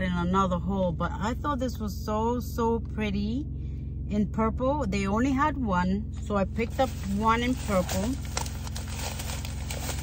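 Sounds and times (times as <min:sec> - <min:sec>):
car cabin hum: 0:00.0 - 0:10.0
plastic packaging crinkling: 0:06.8 - 0:10.0.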